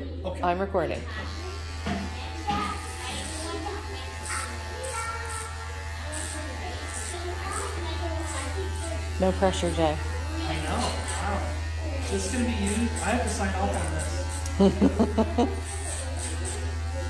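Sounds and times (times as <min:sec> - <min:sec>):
hair clippers buzzing: 0:00.9 - 0:17.0.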